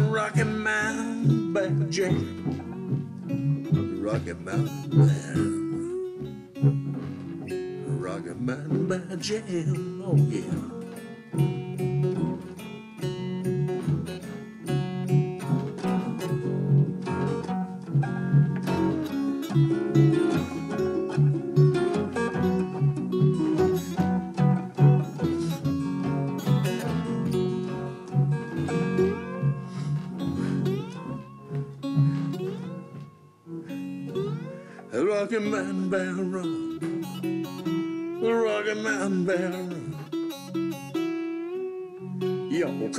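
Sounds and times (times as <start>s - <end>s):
slide diddley bow lead runs: 0.0s - 39.9s
strummed acoustic guitar: 0.0s - 42.9s.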